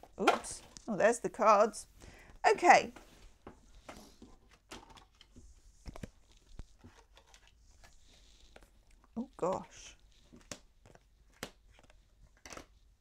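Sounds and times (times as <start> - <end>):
cards tapping and rustling: 2.9 - 12.9
cards being shuffled: 3.0 - 12.9.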